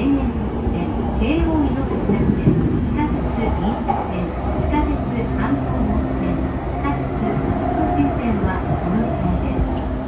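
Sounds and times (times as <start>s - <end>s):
recorded announcement voice: 0.0s - 9.8s
train rumbling inside car: 0.0s - 10.0s.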